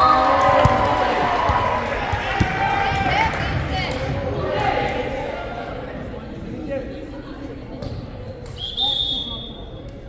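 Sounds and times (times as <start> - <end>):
low voices echoing: 0.0 - 8.4
referee's whistle blast: 8.6 - 9.7.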